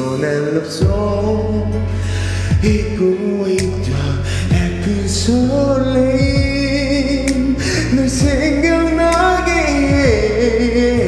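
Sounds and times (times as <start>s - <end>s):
karaoke backing track: 0.0s - 11.0s
man singing into a microphone: 0.0s - 11.0s.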